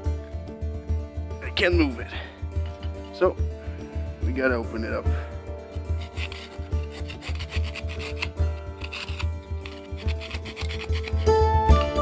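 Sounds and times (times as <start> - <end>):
background music: 0.0 - 12.0
plucked melody: 0.0 - 12.0
screwdriver scraping ice: 2.7 - 3.2, 5.7 - 11.4.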